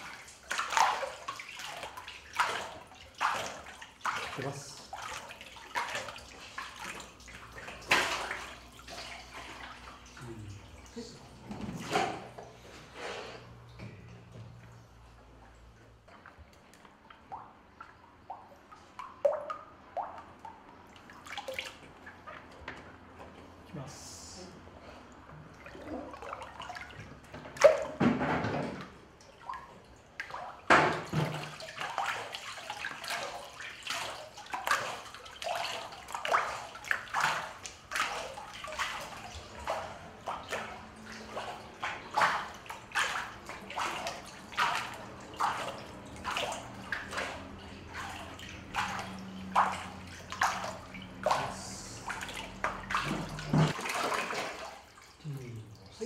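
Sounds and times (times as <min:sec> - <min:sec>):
water sloshing in vat: 0:00.0 - 0:56.0
water poured from bucket: 0:30.2 - 0:56.0.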